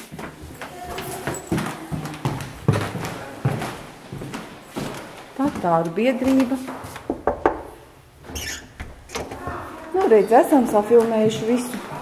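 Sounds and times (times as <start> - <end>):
thumps or knocks: 7.1 - 7.8.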